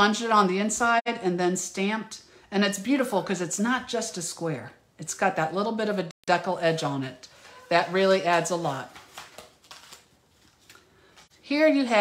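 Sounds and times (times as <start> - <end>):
plastic packaging crinkling: 7.4 - 11.3.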